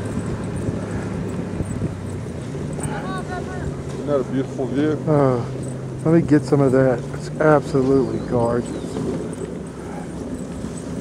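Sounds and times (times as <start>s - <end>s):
dogs' paws pattering: 0.0s - 11.0s
sled runners rushing on snow: 0.0s - 11.0s.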